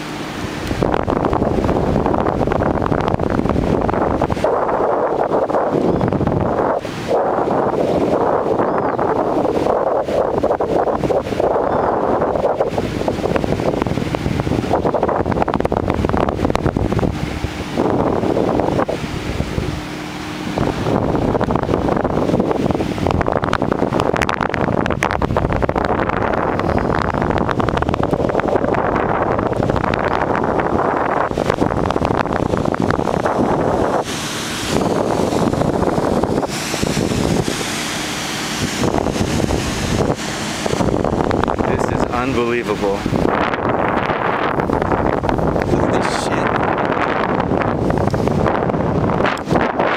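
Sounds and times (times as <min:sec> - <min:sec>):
wind buffeting microphone: 0:00.0 - 0:49.9.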